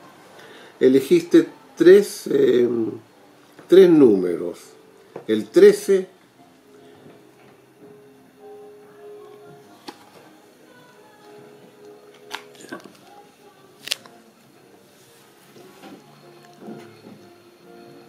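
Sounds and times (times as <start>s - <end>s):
soft background music: 0.0s - 18.0s.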